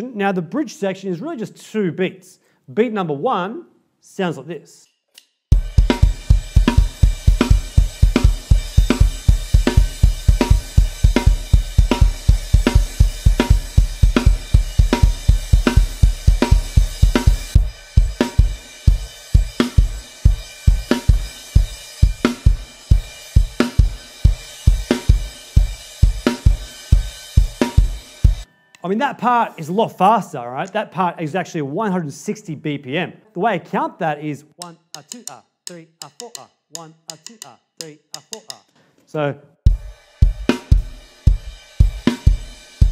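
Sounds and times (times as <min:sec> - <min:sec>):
bass drum hits: 0:05.5 - 0:21.2
snare and hi-hat: 0:05.5 - 0:28.5, 0:39.7 - 0:42.9
crash cymbal: 0:05.5 - 0:28.6.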